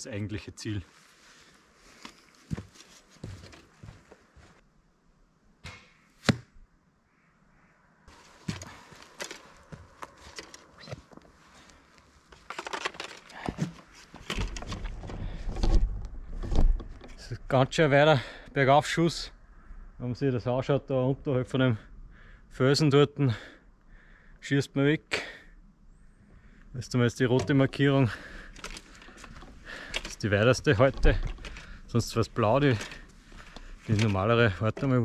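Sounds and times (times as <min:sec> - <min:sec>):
footsteps on dirt path: 0:01.3 - 0:04.6, 0:08.1 - 0:11.8
gear rustling: 0:08.1 - 0:17.2, 0:27.2 - 0:34.9.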